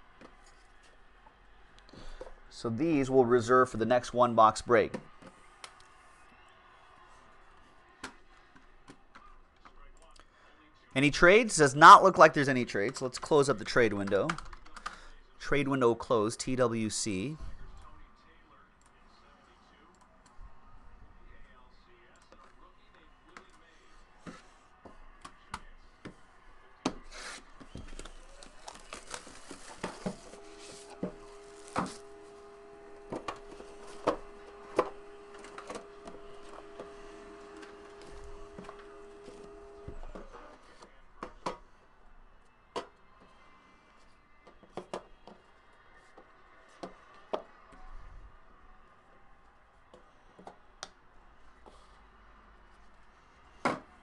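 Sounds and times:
wrapper rubbing and tearing: 0:28.3 - 0:32.4.

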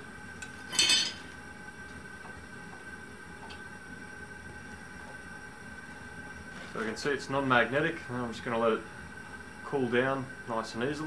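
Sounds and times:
gas forge hissing: 0:00.0 - 0:11.0
tongs clinking on metal: 0:00.4 - 0:01.2.

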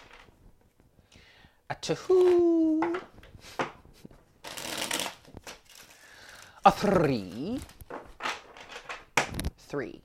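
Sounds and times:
cards rustling: 0:04.4 - 0:09.5.

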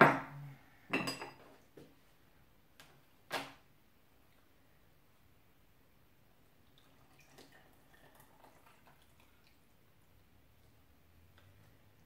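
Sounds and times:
soft drips and splashes: 0:06.3 - 0:12.0.

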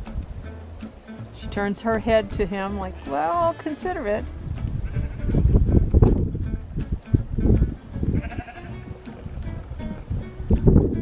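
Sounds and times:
background music: 0:00.0 - 0:11.0
sheep bleat: 0:04.8 - 0:05.4, 0:08.1 - 0:08.9.

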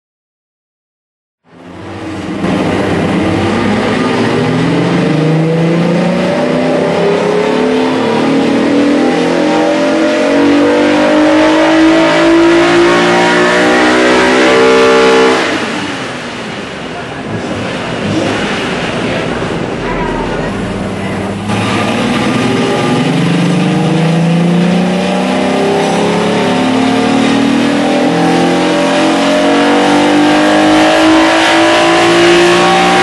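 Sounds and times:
car engine revving at full throttle: 0:01.5 - 0:33.0.

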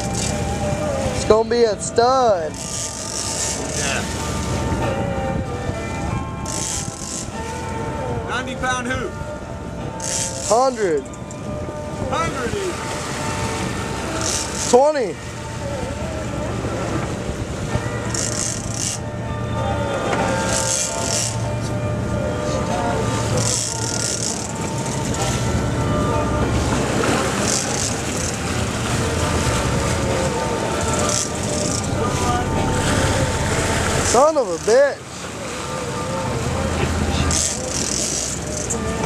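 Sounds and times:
boat engines running: 0:00.0 - 0:39.0
water rushing past hull: 0:11.7 - 0:39.0.

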